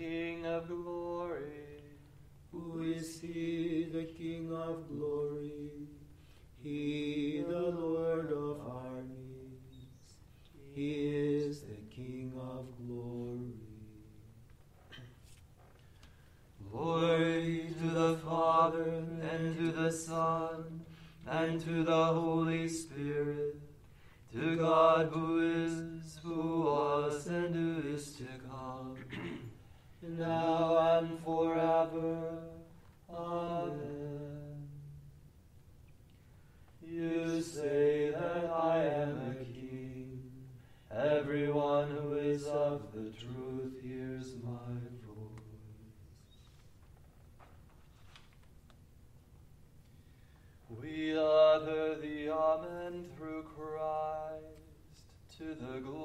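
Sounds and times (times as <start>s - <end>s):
psalm chanting on one note: 0.0s - 14.4s, 16.6s - 29.4s, 30.0s - 35.0s, 36.8s - 46.0s.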